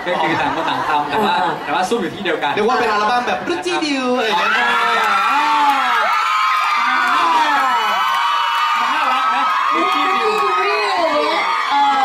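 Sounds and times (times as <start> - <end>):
audience cheering and shrieking: 4.3 - 12.0.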